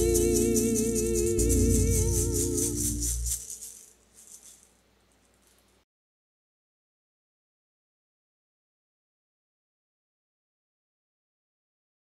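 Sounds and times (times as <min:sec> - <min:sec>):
faint maraca shakes: 0:00.0 - 0:05.8.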